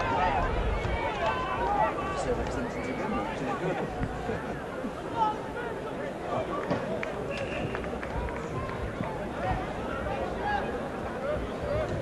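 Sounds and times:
chatter of several voices: 0:00.0 - 0:07.2.

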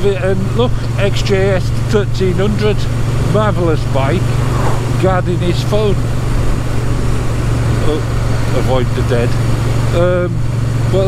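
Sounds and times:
motorcycle engine running: 0:00.0 - 0:11.0
road noise: 0:00.0 - 0:11.0
rushing wind: 0:02.8 - 0:08.6.

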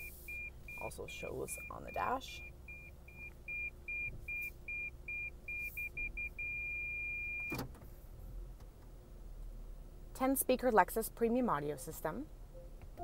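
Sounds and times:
parking sensor warning beeps: 0:00.0 - 0:07.6.

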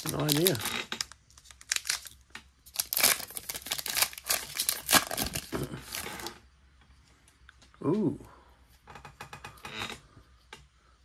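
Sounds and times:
wrapper crinkling and tearing: 0:00.0 - 0:06.4.

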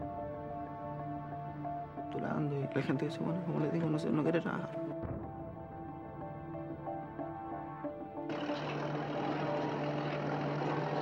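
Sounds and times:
low steady drone: 0:05.0 - 0:11.0
drilling rig machine noise: 0:08.3 - 0:11.0.

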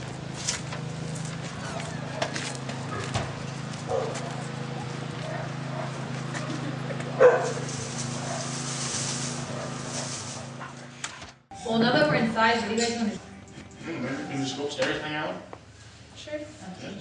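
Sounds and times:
footsteps over doorstep: 0:00.1 - 0:11.4.

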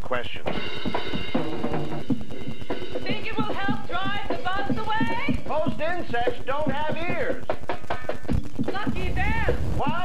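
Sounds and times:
background music with rapid tapping: 0:00.0 - 0:10.0.

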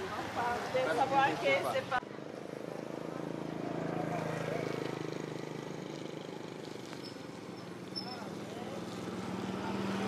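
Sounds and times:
vehicle engine passing: 0:02.5 - 0:10.0.

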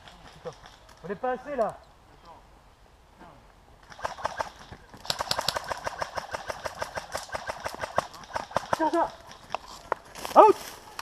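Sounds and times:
airsoft guns firing rapid bursts: 0:03.9 - 0:09.4.

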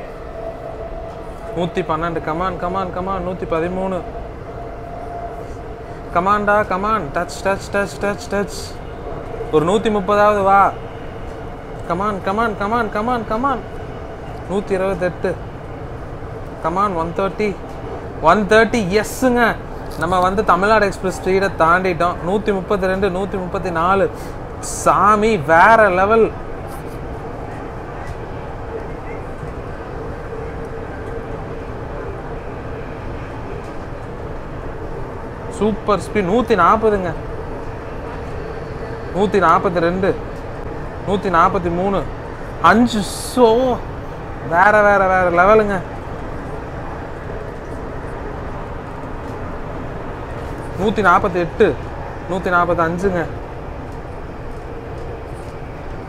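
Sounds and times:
train cabin running noise: 0:00.0 - 0:56.0.

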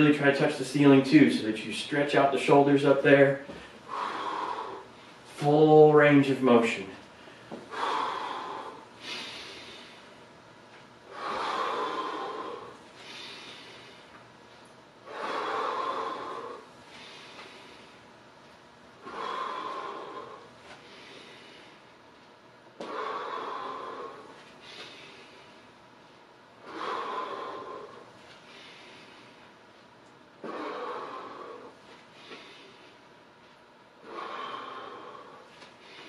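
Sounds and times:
man breathing forcefully: 0:03.5 - 0:05.5, 0:07.2 - 0:10.4, 0:11.0 - 0:14.2, 0:15.0 - 0:18.2, 0:19.0 - 0:22.1, 0:22.8 - 0:25.8, 0:26.6 - 0:29.7, 0:30.3 - 0:33.3, 0:33.9 - 0:36.0.

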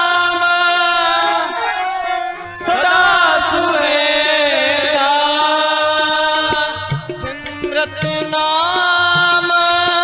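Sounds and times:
harmonium drone: 0:00.0 - 0:10.0.

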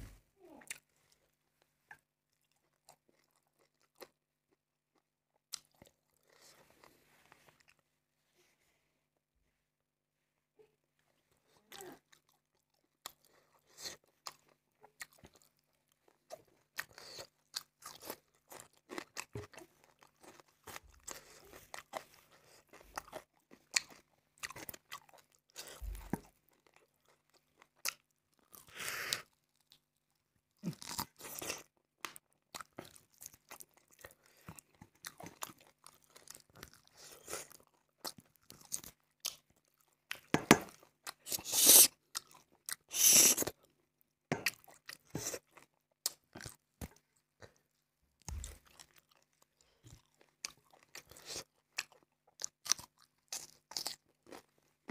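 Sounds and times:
wet chewing and smacking: 0:01.9 - 0:07.0, 0:11.7 - 0:43.7, 0:44.3 - 0:54.9.

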